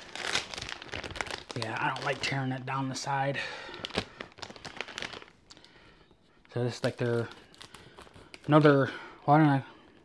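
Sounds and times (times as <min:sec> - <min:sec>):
plastic bag crinkling: 0:00.0 - 0:08.9.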